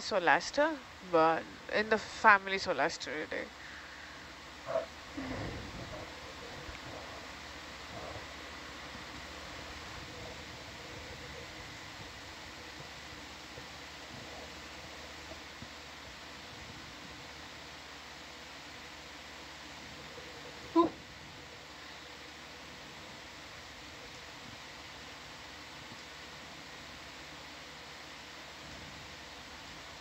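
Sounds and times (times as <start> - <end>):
low background hiss: 0.0 - 30.0.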